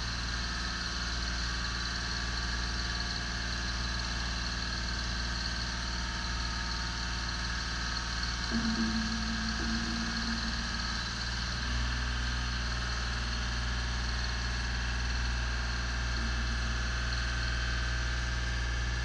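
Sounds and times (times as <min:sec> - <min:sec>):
boom lift engine humming: 0:00.0 - 0:18.6.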